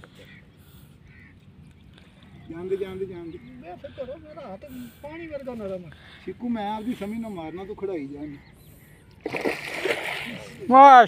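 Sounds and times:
fish thrashing and water splashing: 9.2s - 10.7s.

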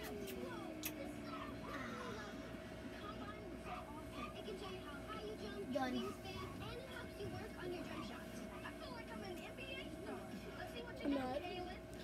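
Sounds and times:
children talking: 0.0s - 12.0s
faint steady hum: 0.0s - 12.0s.

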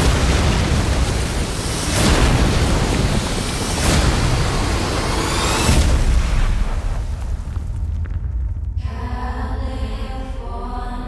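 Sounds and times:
rushing water: 0.0s - 7.3s
deep rumble of collapsing structure: 0.0s - 10.8s
trailer music: 8.0s - 11.0s.

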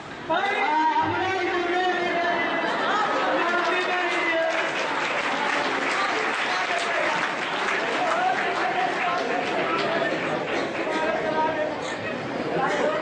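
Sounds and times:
audience clapping: 2.9s - 11.6s.

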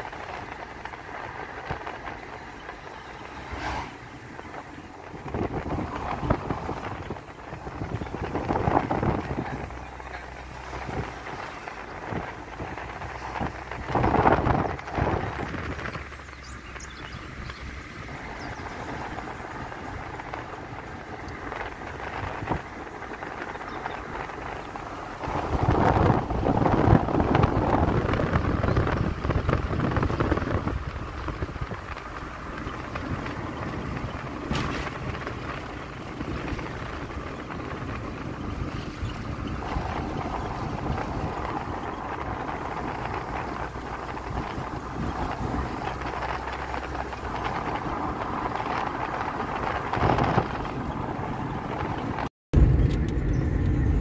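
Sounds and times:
tyres rumbling on road: 0.0s - 54.0s
wind over car: 0.0s - 54.0s.

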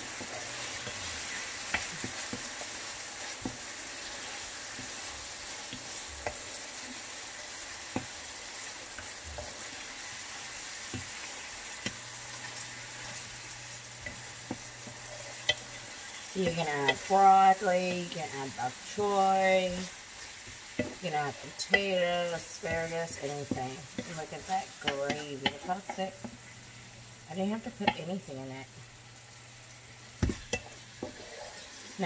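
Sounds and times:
meat and onions sizzling in pan: 0.0s - 32.0s
spatula knocking against pan: 20.8s - 21.0s.

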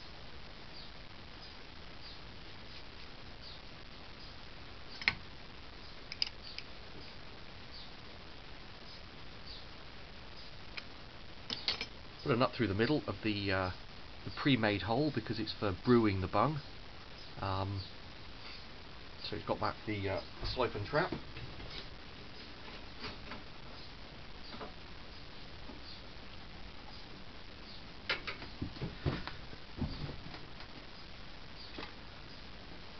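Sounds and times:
low steady hiss: 0.0s - 32.9s
faint clicks and metal taps: 6.1s - 6.7s.

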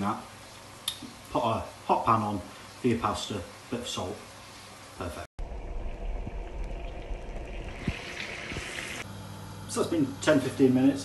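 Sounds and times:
low rumble: 5.4s - 8.1s
sauce bubbling in a frying pan: 5.4s - 9.1s.

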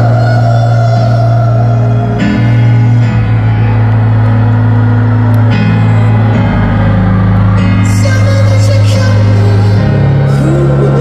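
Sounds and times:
live pop music through speakers: 0.0s - 11.0s.

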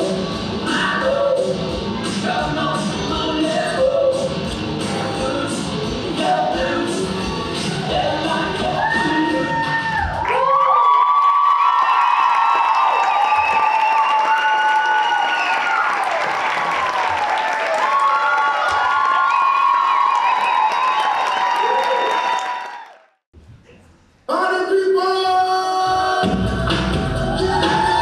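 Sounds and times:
music: 0.0s - 10.2s, 25.8s - 28.0s
audience applauding and cheering: 6.9s - 23.2s, 26.8s - 28.0s.

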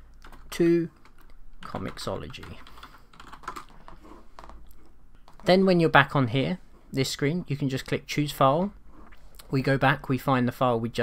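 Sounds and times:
computer keyboard typing: 0.2s - 5.5s.

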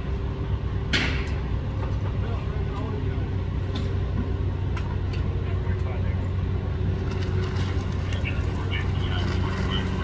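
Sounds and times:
diesel truck engine idling: 0.0s - 10.0s.

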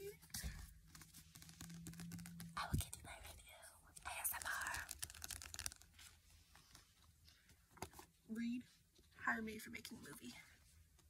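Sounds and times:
book handling clicks and rustles: 0.3s - 2.9s, 4.1s - 8.1s.

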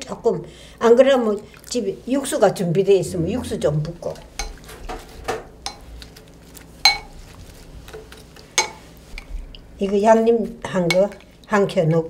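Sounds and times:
spoon stirring in glass bowl: 3.9s - 11.4s
spoon clinking on glass: 5.6s - 5.9s, 6.8s - 7.1s, 8.6s - 8.8s.

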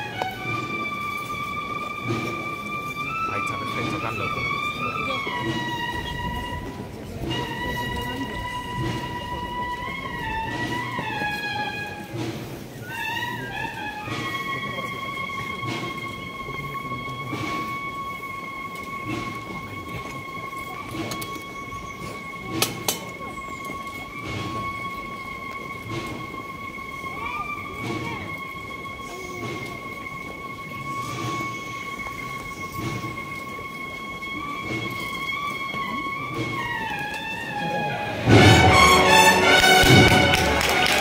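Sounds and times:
cornets playing held notes: 0.0s - 12.2s, 12.8s - 21.1s, 24.1s - 41.0s
crowd murmuring: 0.0s - 41.0s.

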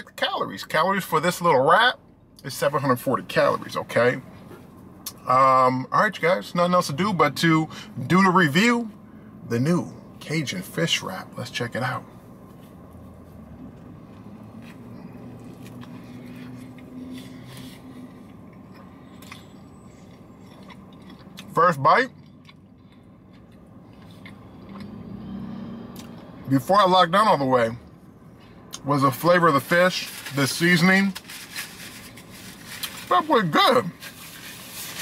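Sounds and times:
person chewing food: 14.1s - 21.5s, 22.2s - 25.0s
soft crunches of breading: 14.1s - 21.5s
soft rustling: 30.0s - 33.1s, 34.0s - 35.0s.

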